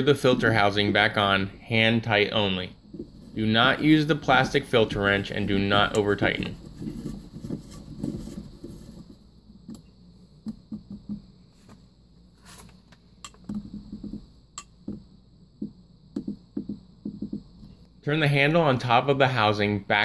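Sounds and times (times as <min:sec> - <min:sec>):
hands rubbing plastic: 0:02.8 - 0:09.8.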